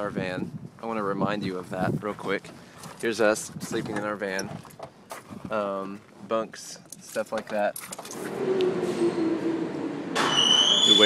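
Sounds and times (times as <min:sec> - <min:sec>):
subway train rumble: 0:08.3 - 0:11.0.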